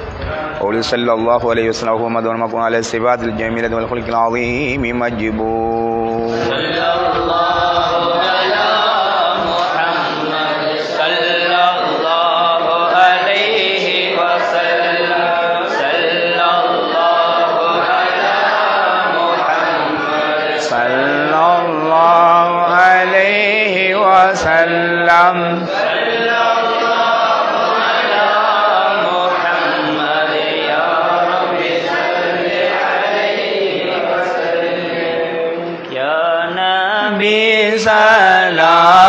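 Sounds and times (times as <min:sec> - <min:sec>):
men chanting together: 0:04.4 - 0:39.0.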